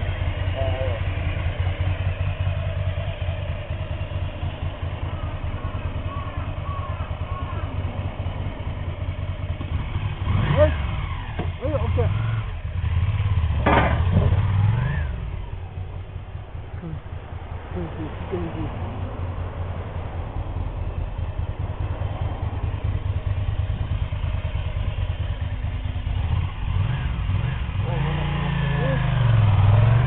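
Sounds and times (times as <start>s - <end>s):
motorcycle engine idling and revving: 0.0s - 30.0s.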